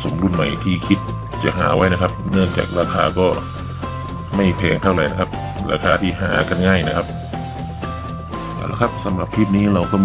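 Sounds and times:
person speaking: 0.0s - 3.6s, 4.2s - 7.2s, 8.4s - 10.0s.

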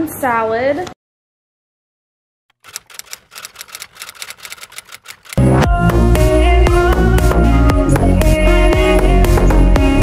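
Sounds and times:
quick sharp clicks: 2.5s - 5.6s.

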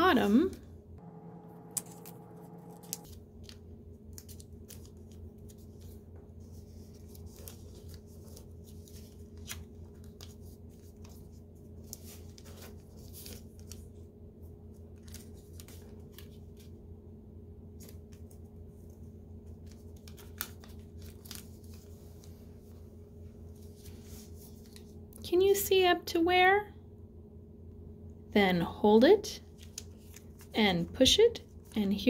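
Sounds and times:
low steady hum: 0.0s - 32.0s
paper rustling and crackling: 1.8s - 14.1s, 14.7s - 16.8s, 17.7s - 22.8s, 23.5s - 25.0s, 29.5s - 32.0s.

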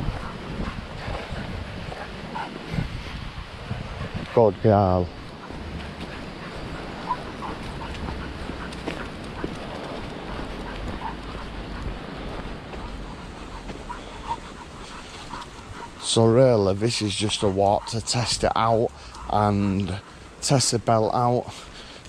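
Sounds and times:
walking noise: 0.0s - 22.0s
puppy whining: 5.2s - 9.5s, 12.7s - 16.0s.

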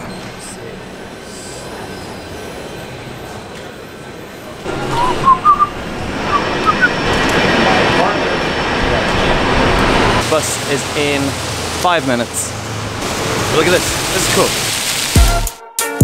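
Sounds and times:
airport terminal background noise: 0.0s - 13.0s.

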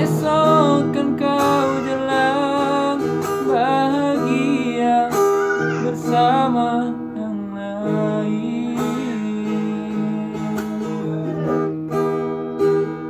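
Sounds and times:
acoustic guitar strumming: 0.0s - 13.0s.

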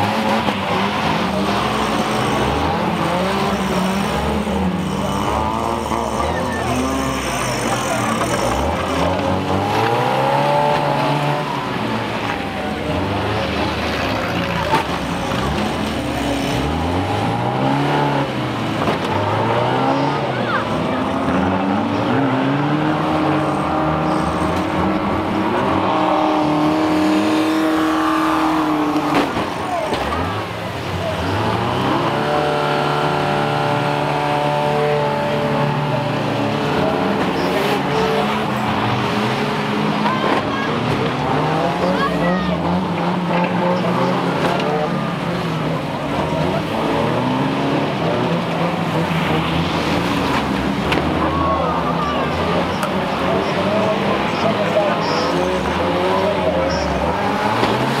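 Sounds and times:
van engines revving: 0.0s - 58.0s.

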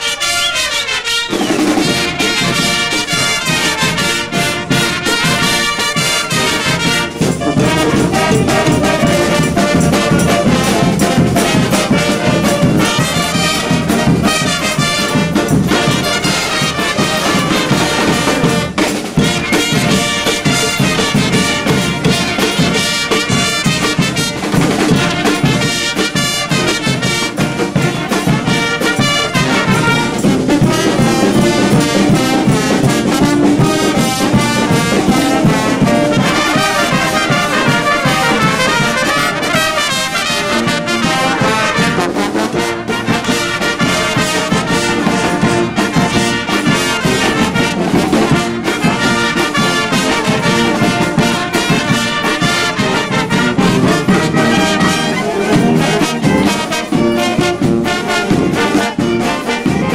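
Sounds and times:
festive street brass band: 0.0s - 59.9s
steady drum beat: 0.7s - 59.9s.

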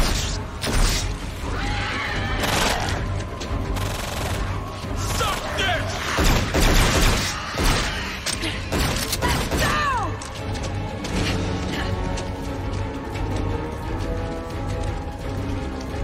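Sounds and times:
film score music: 0.0s - 16.0s
gunfire-like bursts: 6.1s - 8.0s.

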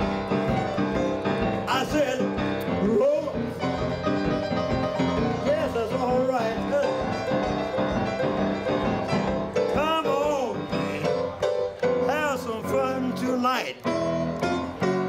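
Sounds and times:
rhythm and blues piano: 0.0s - 15.0s
man singing: 1.6s - 3.9s, 5.2s - 7.6s, 9.6s - 11.3s, 12.0s - 13.9s.

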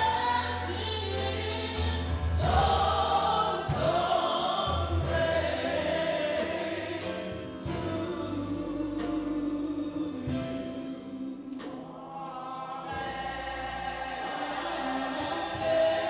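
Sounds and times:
gospel choir singing: 0.0s - 16.0s.

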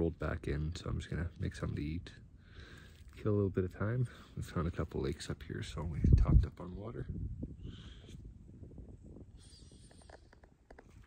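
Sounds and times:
wind rumble on microphone: 4.4s - 11.0s.

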